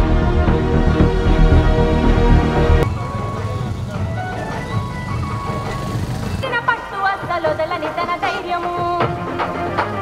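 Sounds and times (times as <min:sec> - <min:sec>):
traffic rumble: 0:02.8 - 0:09.5
street voices: 0:02.8 - 0:10.0.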